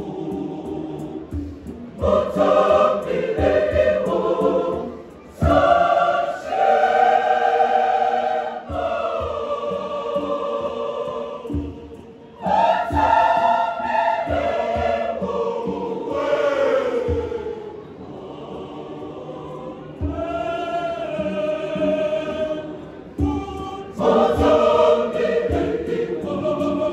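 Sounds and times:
choir singing in harmony: 0.0s - 26.9s.

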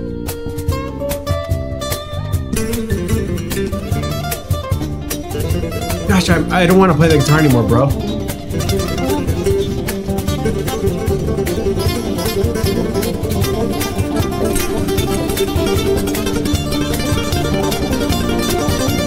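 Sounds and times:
acoustic guitars playing fast: 0.0s - 19.0s.

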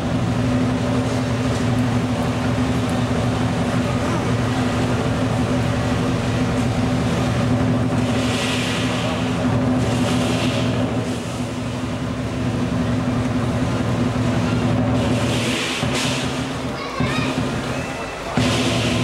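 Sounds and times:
big drum roll: 0.0s - 19.0s
clashing cymbals: 14.3s - 19.0s.

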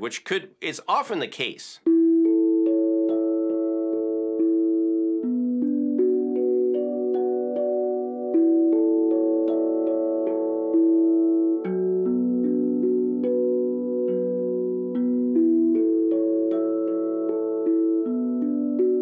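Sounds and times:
steel tongue drum chords: 1.8s - 19.0s.

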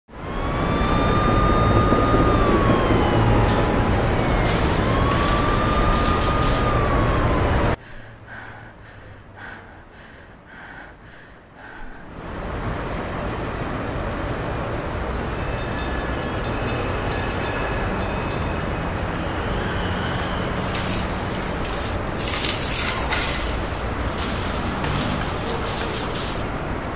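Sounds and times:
siren wailing: 0.1s - 7.8s
traffic noise: 0.1s - 26.9s.

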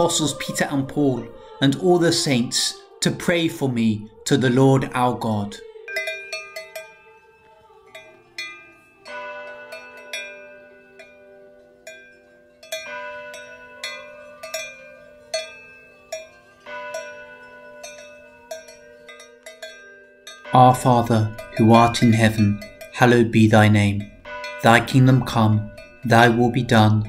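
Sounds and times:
cowbells clanking: 5.6s - 27.0s.

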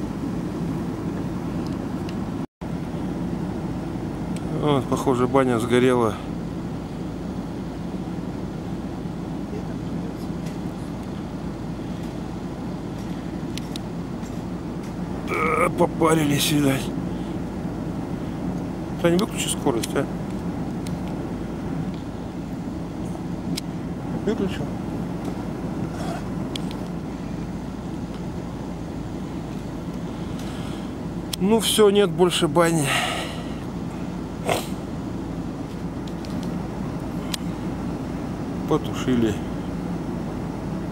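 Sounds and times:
vehicle engine idling: 0.0s - 40.9s.

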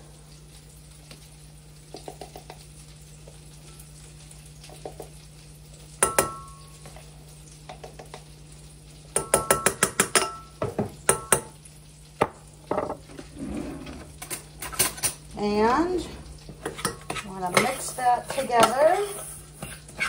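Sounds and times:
metal utensil clinking on saucepan: 9.2s - 10.5s, 16.6s - 19.8s.

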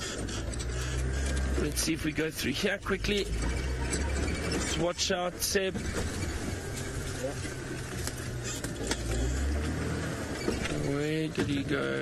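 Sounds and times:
branches knocking and scraping vehicle: 0.0s - 12.0s
vehicle engine running under load: 0.0s - 12.0s.

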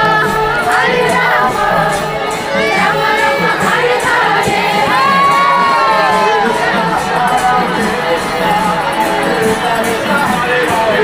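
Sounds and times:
group chanting to a beat: 0.0s - 11.0s.

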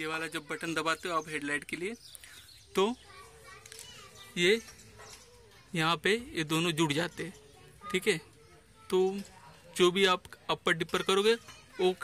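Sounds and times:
outdoor ambience: 0.0s - 12.0s.

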